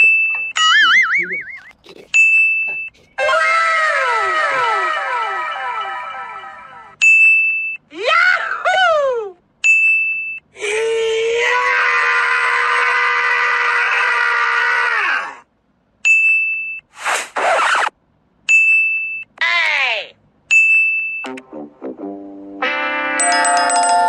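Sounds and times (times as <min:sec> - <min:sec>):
music: 0:21.3 - 0:24.0
short bright dings: 0:23.2 - 0:24.0.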